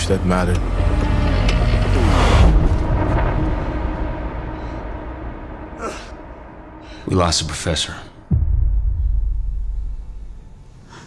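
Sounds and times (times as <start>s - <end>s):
low rumbling trailer hit: 0.3s - 10.9s.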